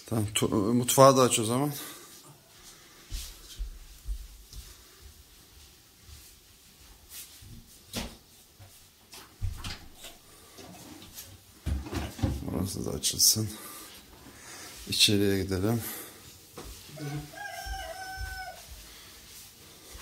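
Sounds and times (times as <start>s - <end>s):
footsteps on hard floor: 2.6s - 10.2s, 16.2s - 20.0s
person speaking: 14.5s - 16.2s, 16.9s - 18.6s.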